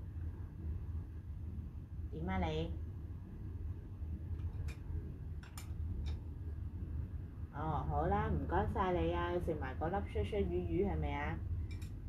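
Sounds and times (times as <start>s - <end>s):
low room rumble: 0.0s - 12.0s.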